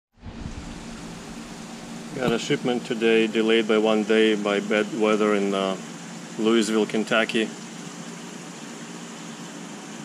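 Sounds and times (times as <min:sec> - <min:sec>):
low hum: 0:00.2 - 0:02.8
even hiss: 0:00.4 - 0:03.4.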